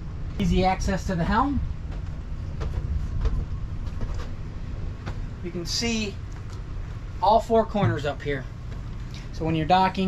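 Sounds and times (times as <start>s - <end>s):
low uneven rumble: 0.0s - 10.0s.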